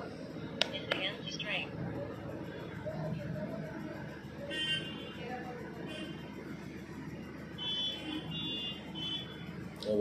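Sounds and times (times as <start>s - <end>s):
traffic noise: 0.0s - 10.0s
high-pitched vehicle horn toots: 4.5s - 5.2s, 7.6s - 9.4s.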